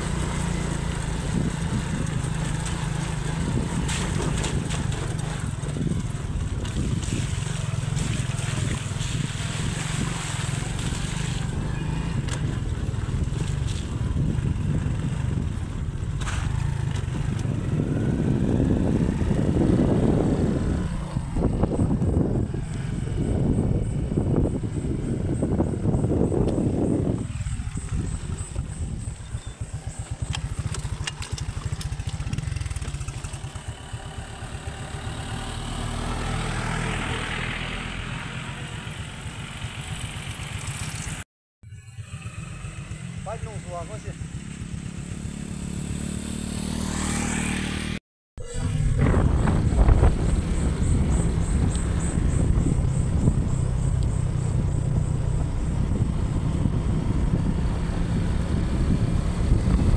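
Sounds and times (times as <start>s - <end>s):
wind buffeting microphone: 0.0s - 33.7s, 48.4s - 59.9s
motorcycle running: 0.0s - 59.9s.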